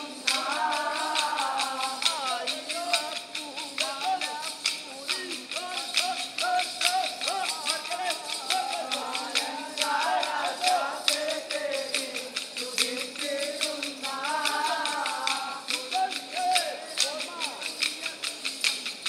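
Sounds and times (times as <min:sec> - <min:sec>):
people singing: 0:00.0 - 0:18.7.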